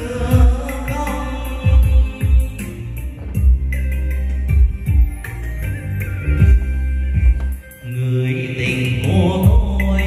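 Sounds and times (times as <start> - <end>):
karaoke music with bass beat: 0.0 - 10.0.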